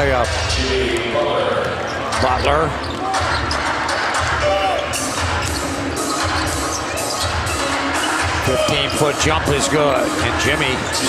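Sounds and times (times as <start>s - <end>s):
arena crowd noise: 0.0s - 11.0s
background music: 0.0s - 11.0s.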